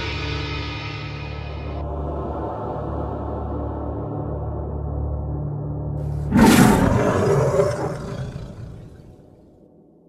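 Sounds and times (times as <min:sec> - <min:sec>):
loud animal roar: 0:06.3 - 0:09.3.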